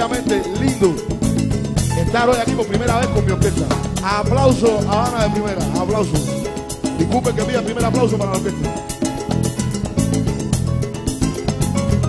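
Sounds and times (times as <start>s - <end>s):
drum kit and congas beat: 0.0s - 12.0s
latin band playing live: 0.0s - 12.0s.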